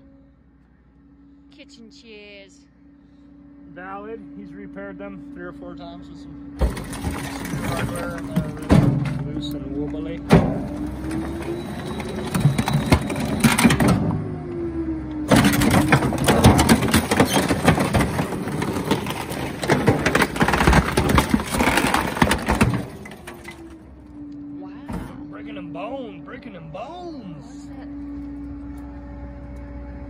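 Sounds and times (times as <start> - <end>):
hydraulic system whine: 2.7 - 19.3, 22.8 - 30.0
garbage truck running: 2.8 - 30.0
wood cracking and splintering: 6.6 - 9.2, 15.3 - 23.8.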